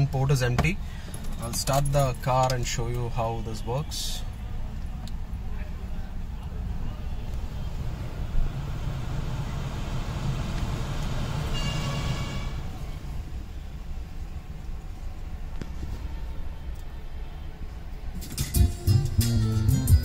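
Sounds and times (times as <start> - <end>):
car engine idling: 0.0 - 15.4
short ringing tone: 11.5 - 12.5
music through car speakers: 18.2 - 20.0.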